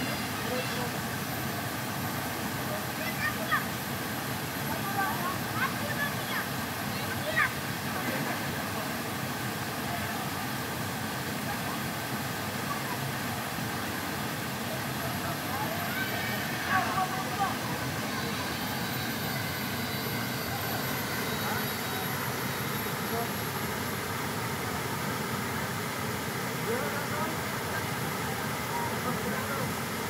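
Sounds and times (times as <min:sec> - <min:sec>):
waterfall rushing into pool: 0:00.0 - 0:30.0.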